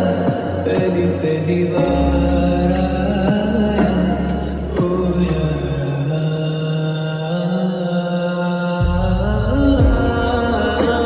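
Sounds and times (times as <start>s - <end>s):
soft backing music: 0.0s - 11.0s.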